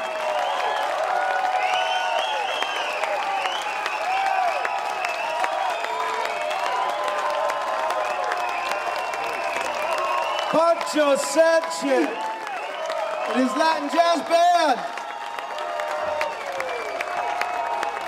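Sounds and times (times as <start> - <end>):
audience clapping: 0.0 - 18.0
crowd whooping and cheering: 0.0 - 18.0.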